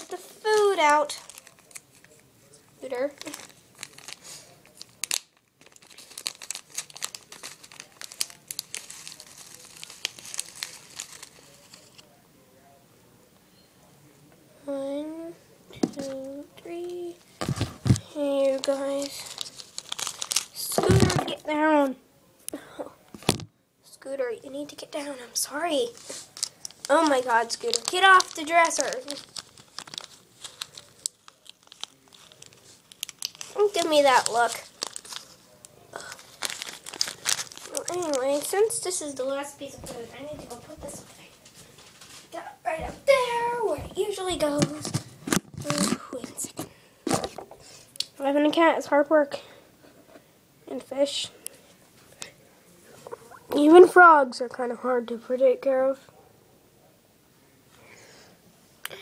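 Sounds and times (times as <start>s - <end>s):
plastic packet crinkling: 0.0s - 2.2s, 2.8s - 12.1s, 17.2s - 21.4s, 25.7s - 40.6s, 44.0s - 47.3s.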